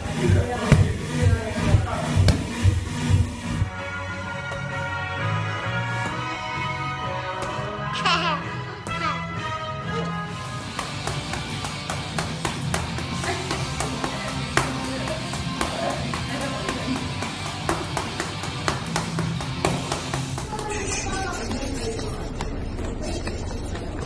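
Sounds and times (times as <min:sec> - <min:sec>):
background music: 0:00.0 - 0:24.0.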